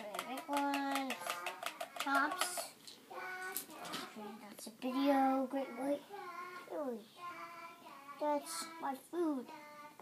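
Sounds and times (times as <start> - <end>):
boy singing wordlessly: 0.0 - 10.0.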